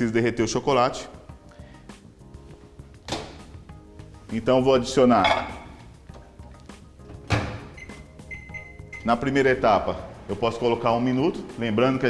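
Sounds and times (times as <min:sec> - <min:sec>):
microwave electronic beep: 0:07.7 - 0:09.3.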